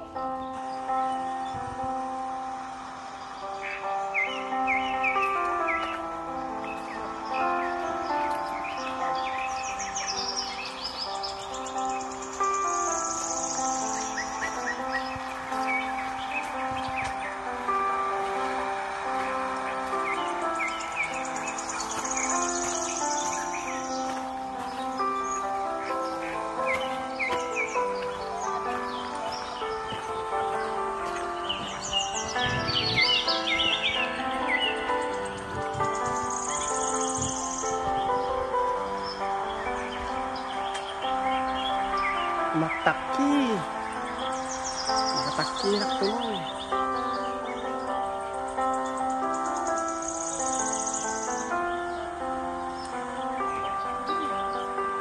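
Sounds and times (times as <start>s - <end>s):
high chirping: 0.0s - 55.0s
slow held background music: 0.0s - 55.0s.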